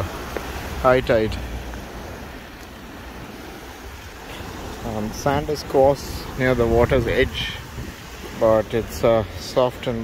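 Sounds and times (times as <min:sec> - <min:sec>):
small waves washing onto shore: 0:00.0 - 0:10.0
wind rumbling on microphone: 0:00.0 - 0:10.0.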